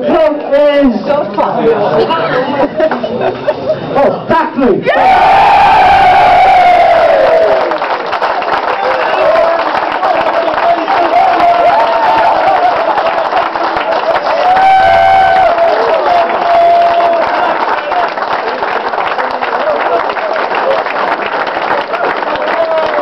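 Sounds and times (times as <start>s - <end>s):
cheers and shouted calls: 4.8s - 7.9s, 8.6s - 18.2s, 21.9s - 23.0s
crowd applauding: 5.0s - 23.0s.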